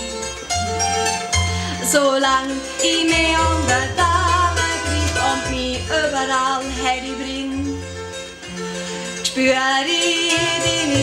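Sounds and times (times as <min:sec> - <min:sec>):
double bass low notes: 0:00.0 - 0:11.0
hammered dulcimer: 0:00.0 - 0:11.0
woman singing: 0:01.7 - 0:07.8, 0:09.2 - 0:11.0.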